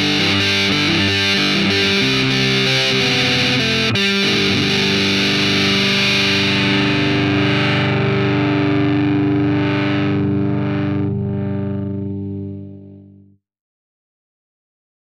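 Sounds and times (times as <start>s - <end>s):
distorted electric guitar chord: 0.0s - 13.3s.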